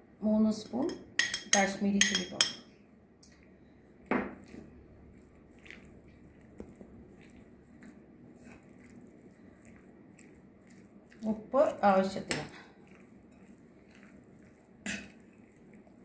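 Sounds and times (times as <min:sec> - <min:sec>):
hand mixing meat in a bowl: 0:03.2 - 0:16.0.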